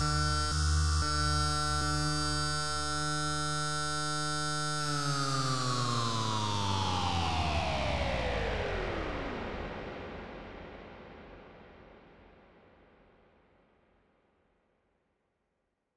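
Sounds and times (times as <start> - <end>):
held synthesizer chord: 0.0 - 3.7.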